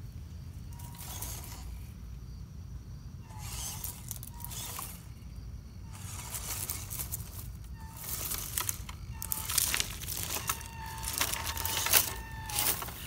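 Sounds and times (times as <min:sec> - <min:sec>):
electric motor and gearbox whirring: 0:00.0 - 0:02.2, 0:03.2 - 0:13.0.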